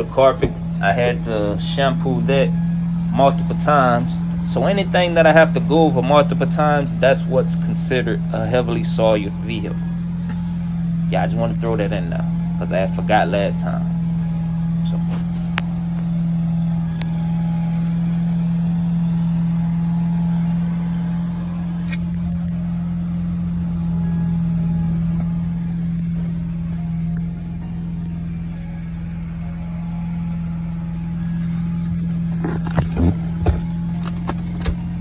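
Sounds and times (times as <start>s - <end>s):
engine hum: 0.0s - 35.0s.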